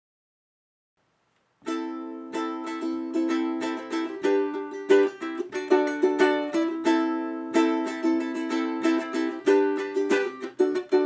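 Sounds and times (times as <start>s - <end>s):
ukulele strumming chords: 1.6s - 11.0s.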